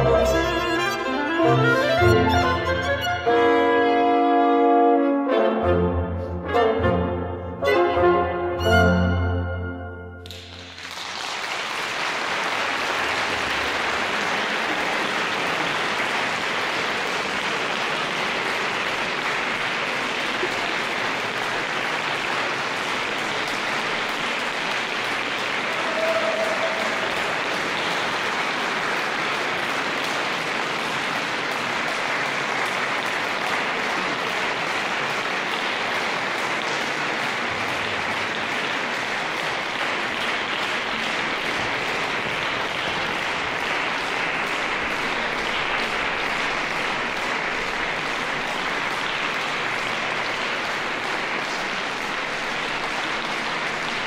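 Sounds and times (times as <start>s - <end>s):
audience applauding in a hall: 0.0s - 4.5s, 8.6s - 54.0s.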